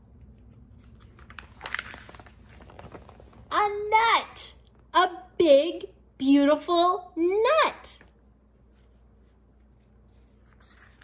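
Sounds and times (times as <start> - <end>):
paper page turning: 0.2 - 3.5, 8.7 - 11.0.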